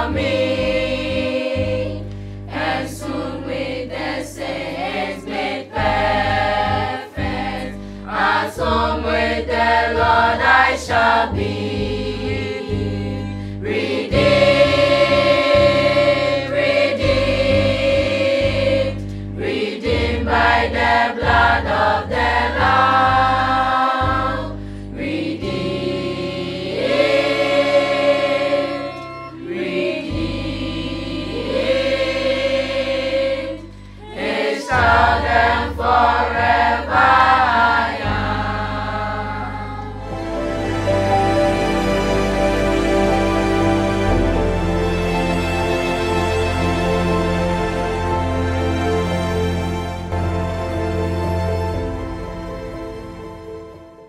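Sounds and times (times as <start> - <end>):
children's choir singing: 0.0 - 50.4
low sustained accompaniment: 40.0 - 54.0.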